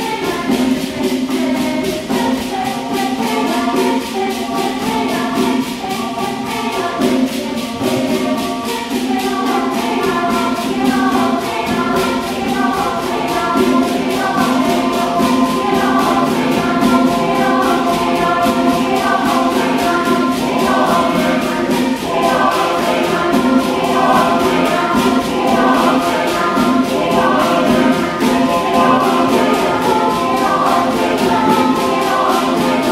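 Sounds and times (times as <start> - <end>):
hand drum beat: 0.0 - 32.9
mixed choir singing in harmony: 0.0 - 32.9.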